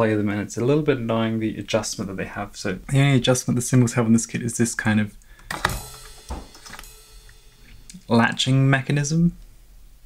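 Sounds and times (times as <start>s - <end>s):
soft knock: 6.3s - 6.6s.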